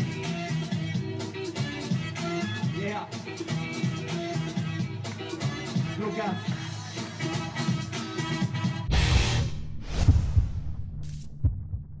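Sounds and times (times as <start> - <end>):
deep bass thumps: 8.9 - 12.0.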